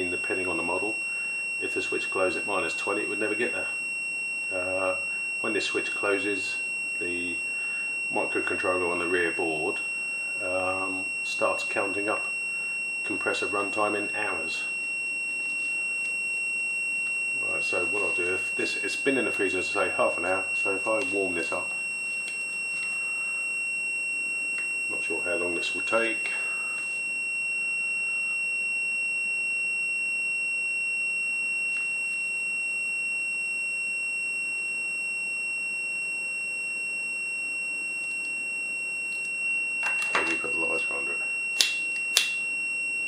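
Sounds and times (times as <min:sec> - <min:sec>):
multimeter continuity buzzer tone: 0:00.0 - 0:43.0.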